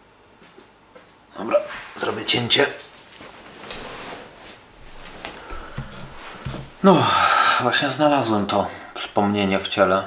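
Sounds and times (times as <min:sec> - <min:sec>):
rustling and handling noise: 0:01.8 - 0:06.8.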